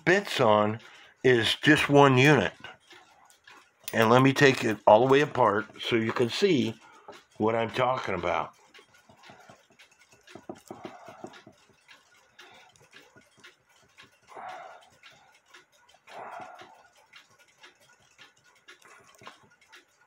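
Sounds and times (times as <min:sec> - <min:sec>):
screwdriver clicking on ratchet: 0:01.5 - 0:20.0.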